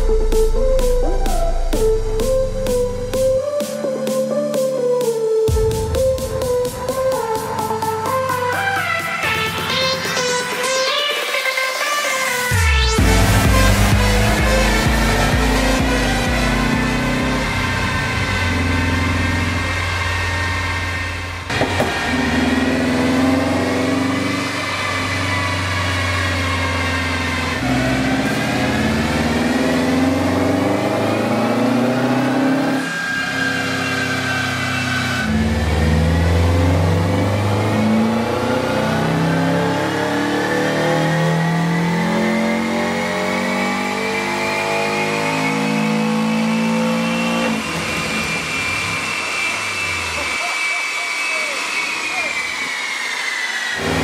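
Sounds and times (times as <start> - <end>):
car engine revving on dyno: 5.5 - 54.0.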